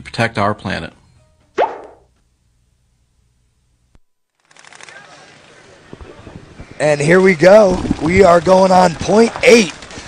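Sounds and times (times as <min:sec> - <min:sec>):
outdoor background hiss: 0:00.2 - 0:10.0.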